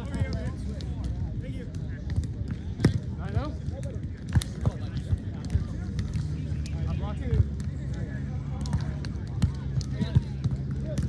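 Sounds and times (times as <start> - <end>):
people's voices: 0.0 - 11.0.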